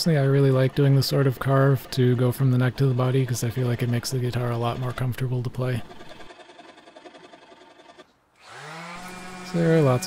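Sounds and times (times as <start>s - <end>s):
hand work on wood: 0.4s - 10.0s
electric orbital sander humming: 5.8s - 10.0s.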